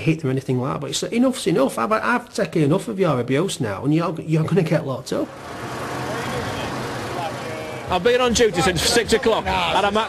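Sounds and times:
vehicle engine humming: 5.2 - 10.0.

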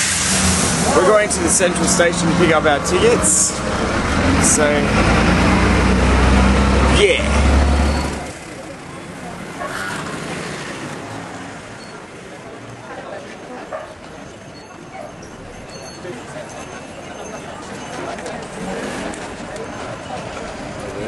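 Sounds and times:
city street background noise: 0.0 - 21.0
faint voices: 0.8 - 21.0.

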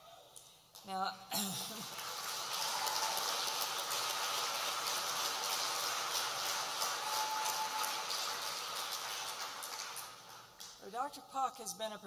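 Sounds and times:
audience applauding: 1.6 - 10.8.

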